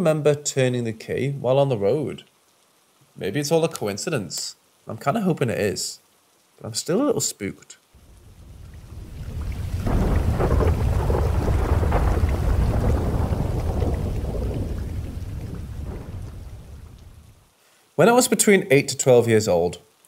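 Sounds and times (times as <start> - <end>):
rain: 0.0 - 20.0
thunder rumbling: 8.0 - 17.4.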